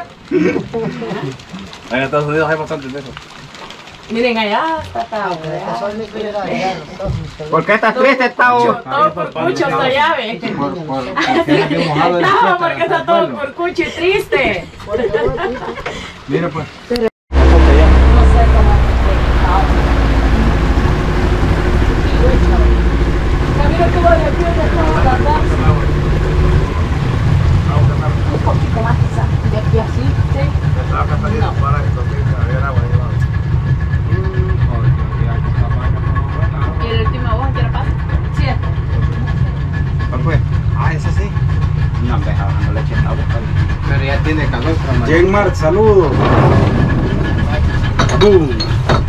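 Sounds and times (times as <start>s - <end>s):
outboard motor running: 0.0s - 12.6s, 17.3s - 49.0s
water rushing past hull: 0.0s - 49.0s.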